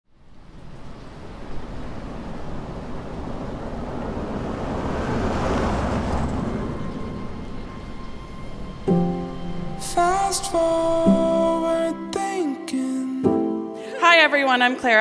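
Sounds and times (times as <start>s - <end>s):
rushing noise with low rumble: 0.1s - 11.9s.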